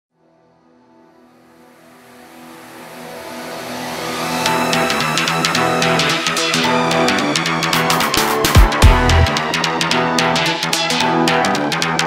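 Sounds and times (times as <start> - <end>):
held synth chord: 0.3 - 11.3.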